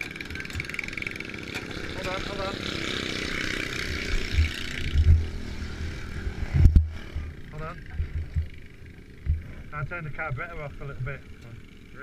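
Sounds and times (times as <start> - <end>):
small engine running rough: 0.0 - 12.0.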